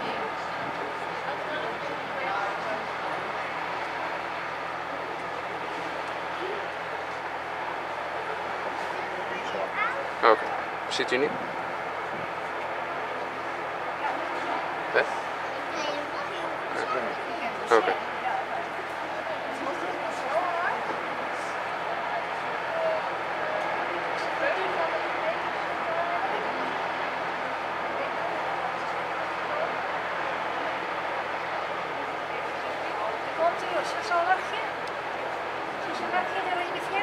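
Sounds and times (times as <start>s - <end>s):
murmur of many voices: 0.0s - 37.0s.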